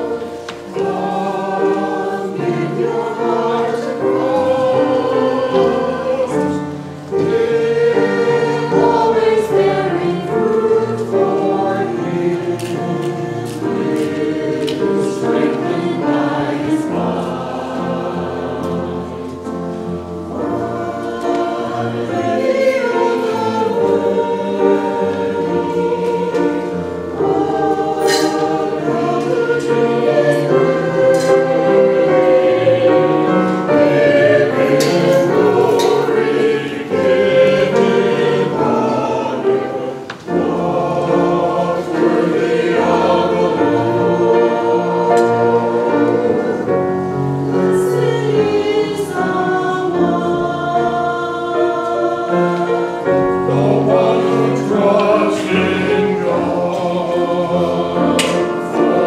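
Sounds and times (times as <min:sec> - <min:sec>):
choir singing in parts: 0:00.0 - 0:59.0.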